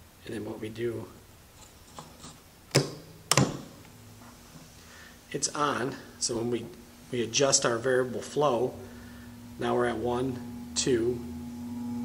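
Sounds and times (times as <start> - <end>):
fume extractor humming: 1.0 - 12.0
control knob clicks: 2.7 - 3.7.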